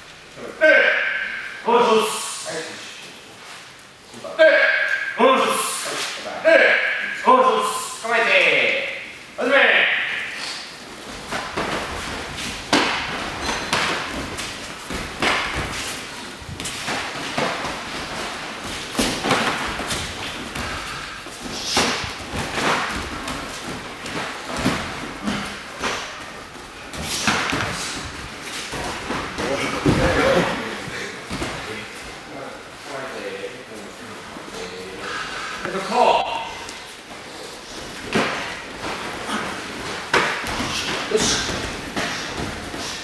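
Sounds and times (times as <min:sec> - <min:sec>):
feet striking mats: 0:10.8 - 0:32.2.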